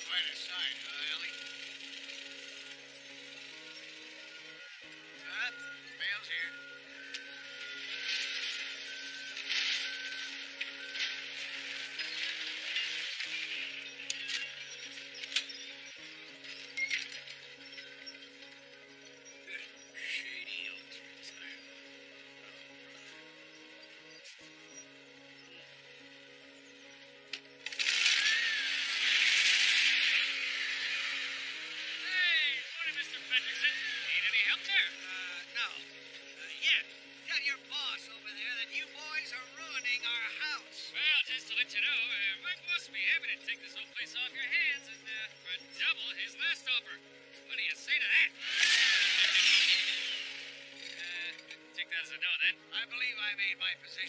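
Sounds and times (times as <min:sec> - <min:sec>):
film soundtrack chords: 0:00.0 - 0:54.0.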